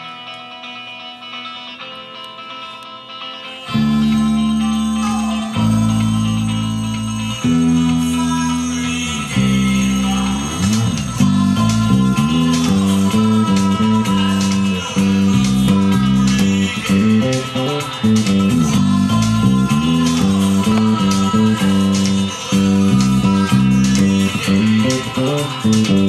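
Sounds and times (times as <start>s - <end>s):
guitar chords: 0.0s - 26.0s
electric bass guitar bassline: 3.6s - 26.0s.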